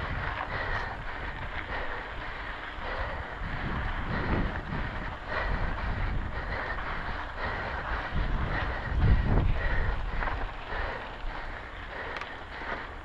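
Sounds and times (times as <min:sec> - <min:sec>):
bike frame rattling: 0:00.0 - 0:13.0
bike tyres crunching on gravel: 0:00.0 - 0:13.0
wind rumble: 0:00.0 - 0:13.0.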